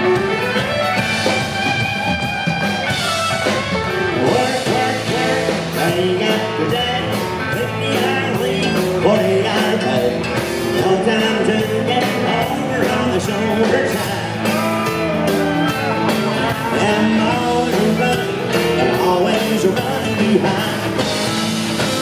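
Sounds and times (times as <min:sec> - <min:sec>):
live country band playing: 0:00.0 - 0:22.0.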